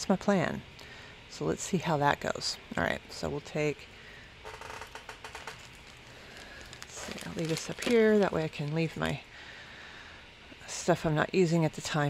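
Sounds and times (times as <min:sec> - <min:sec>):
plastic bag rustling: 0:05.0 - 0:09.2.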